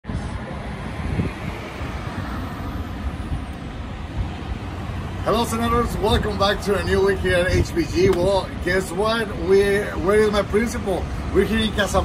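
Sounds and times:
open-air background rumble: 0.0 - 12.0.

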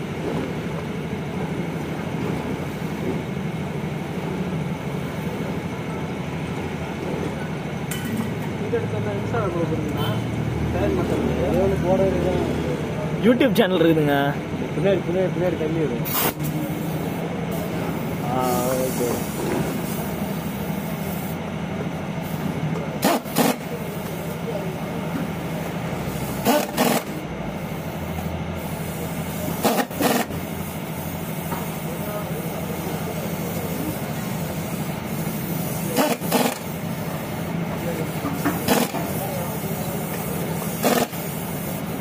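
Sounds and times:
steady background hum: 0.0 - 42.0
impact wrench hammering: 26.4 - 27.2, 40.8 - 41.2.

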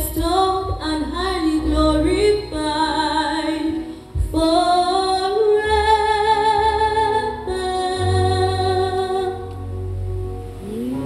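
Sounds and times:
young woman singing: 0.0 - 9.5.

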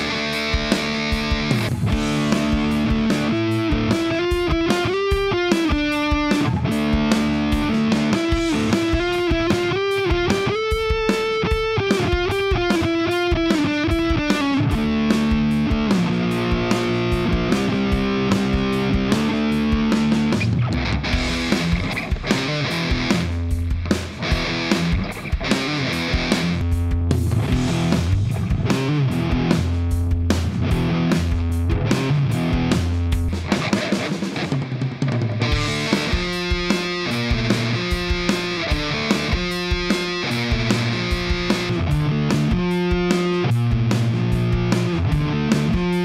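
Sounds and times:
distorted electric guitar riffs: 0.0 - 46.0.

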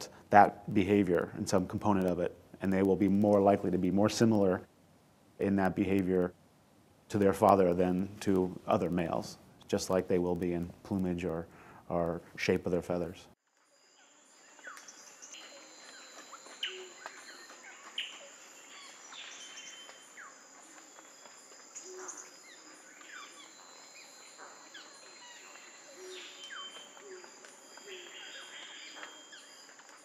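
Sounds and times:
high insect drone: 13.5 - 30.0
birds chirping and whistling: 14.4 - 20.4, 21.7 - 30.0.

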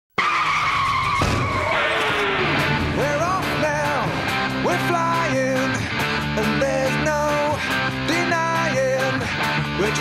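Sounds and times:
car tyre screech: 0.2 - 2.8
low rumble: 2.2 - 5.9.

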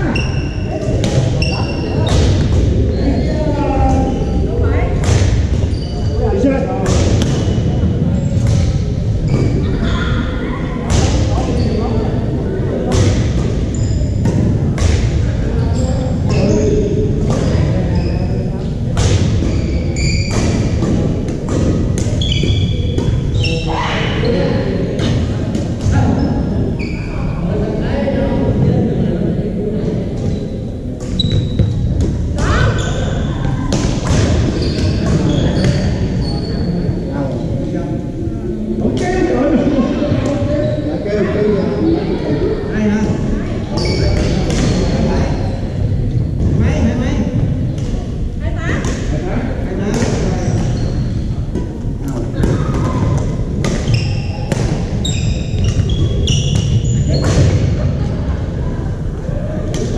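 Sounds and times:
sneakers squeaking on gym floor: 0.0 - 3.4, 5.2 - 6.3, 13.1 - 14.2, 14.8 - 18.5, 19.2 - 23.9, 26.2 - 27.3, 31.0 - 37.1, 43.7 - 45.8, 50.2 - 51.3, 52.5 - 57.8.

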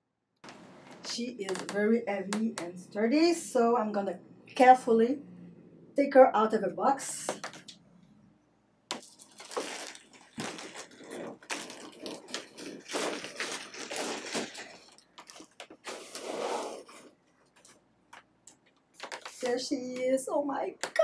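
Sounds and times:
foam squeaking and scraping: 15.8 - 17.1.

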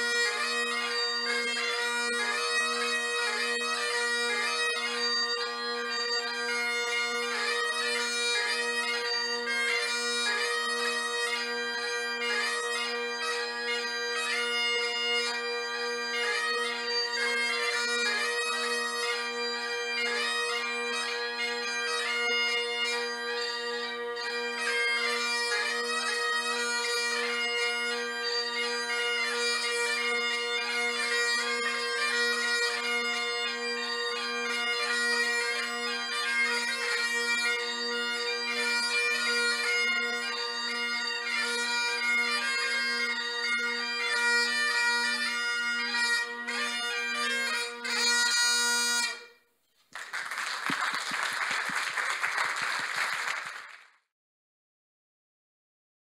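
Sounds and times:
bagpipe playing a tune: 0.0 - 49.5
applause: 49.9 - 54.1.

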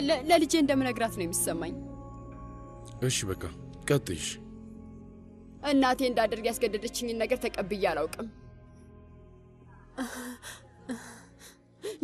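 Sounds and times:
woman sobbing: 10.0 - 12.0.

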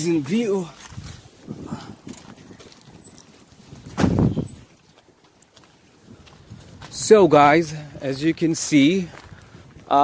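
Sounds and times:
faint footsteps: 0.0 - 10.0.

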